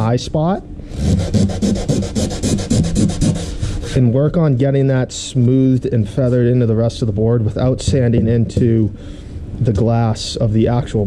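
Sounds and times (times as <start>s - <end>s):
sandpaper scraping on fibreglass: 0.9s - 4.1s.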